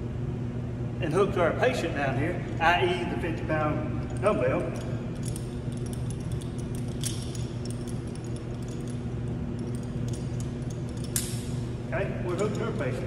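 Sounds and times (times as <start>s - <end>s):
steady low hum: 0.0s - 13.0s
metallic clinks of carabiners: 2.3s - 13.0s.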